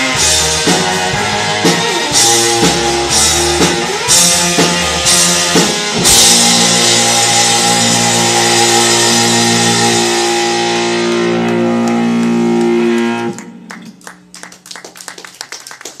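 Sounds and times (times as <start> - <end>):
rock band final chord: 0.0 - 13.8
audience clapping: 10.9 - 16.0.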